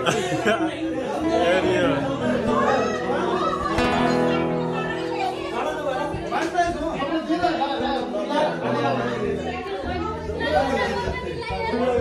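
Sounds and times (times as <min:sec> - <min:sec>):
party crowd chatter: 0:00.0 - 0:12.0
music playing: 0:01.1 - 0:11.4.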